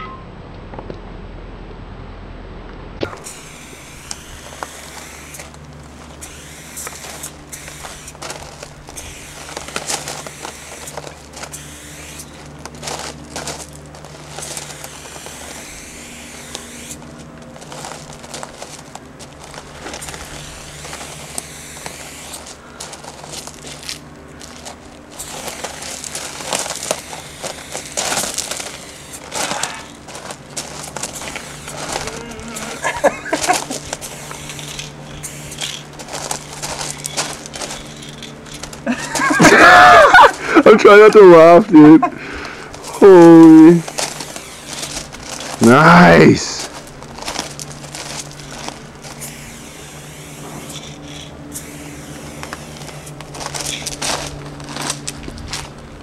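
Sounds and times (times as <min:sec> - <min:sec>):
steady low hum: 0:00.0 - 0:56.0
aerosol spray can hissing: 0:03.1 - 0:40.6, 0:42.2 - 0:45.7, 0:46.6 - 0:55.0.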